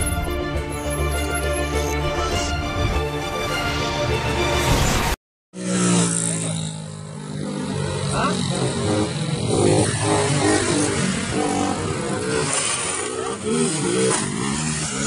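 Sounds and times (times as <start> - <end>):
motorcycle engine running: 5.6 - 15.0.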